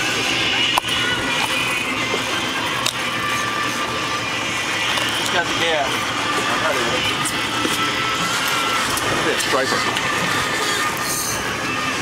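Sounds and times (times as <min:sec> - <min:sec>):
boat engine running: 0:00.0 - 0:12.0.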